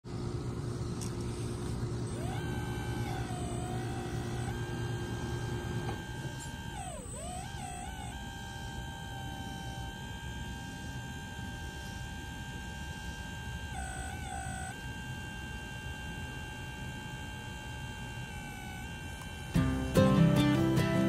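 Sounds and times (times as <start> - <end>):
steady low hum: 0.0 - 21.0
small electric motors whining: 0.2 - 21.0.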